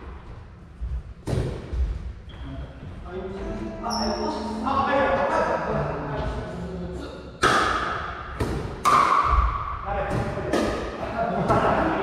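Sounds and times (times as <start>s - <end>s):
paddles hitting pickleball: 7.4s - 11.7s.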